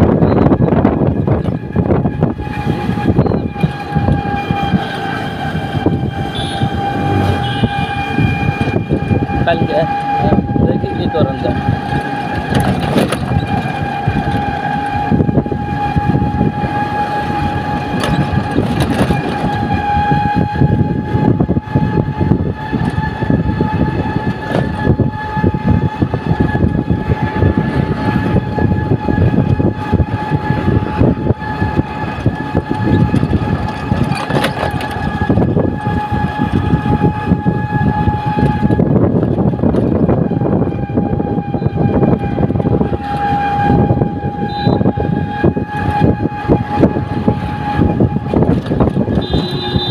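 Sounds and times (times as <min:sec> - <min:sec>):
vehicle rumble: 0:00.0 - 0:49.9
high-pitched whine: 0:05.8 - 0:11.3.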